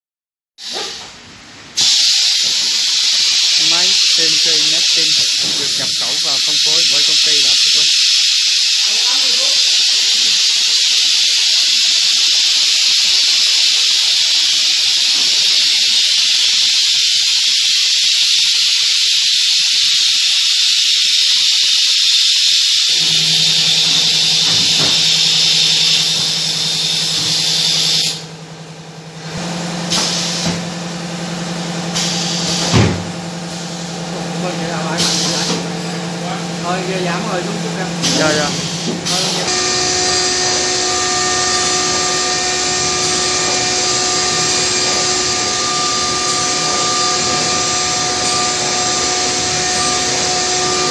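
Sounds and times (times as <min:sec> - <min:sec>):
router cutting wood hiss: 0:01.8 - 0:28.3, 0:38.0 - 0:50.9
low machine hum: 0:23.0 - 0:29.9, 0:32.8 - 0:50.9.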